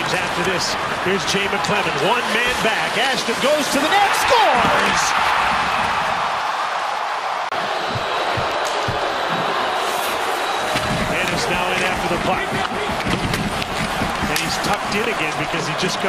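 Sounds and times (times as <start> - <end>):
crowd hubbub: 0.0 - 16.0
skates scraping on ice: 9.7 - 15.4
sticks and puck clacking: 10.7 - 15.4.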